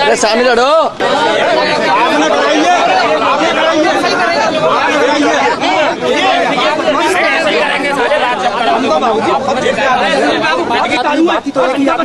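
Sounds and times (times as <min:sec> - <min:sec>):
crowd of men arguing: 0:00.0 - 0:12.0.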